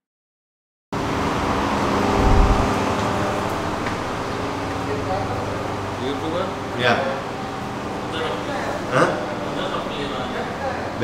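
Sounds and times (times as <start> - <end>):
ventilation hum and hiss: 1.0 - 11.0.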